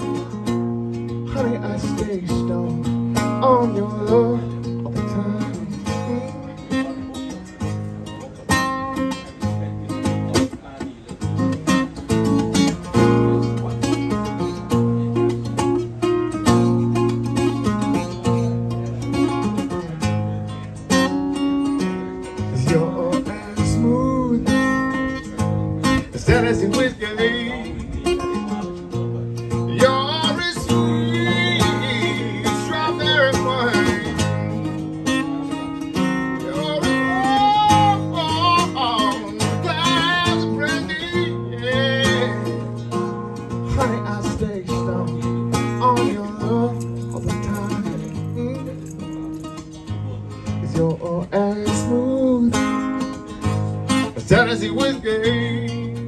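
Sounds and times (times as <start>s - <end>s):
man singing: 0.0s - 14.9s, 21.7s - 56.0s
strummed acoustic guitar: 0.0s - 56.0s.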